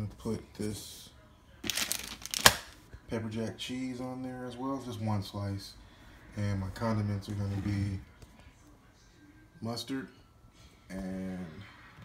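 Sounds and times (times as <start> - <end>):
plastic packaging crinkling: 1.6 - 2.8.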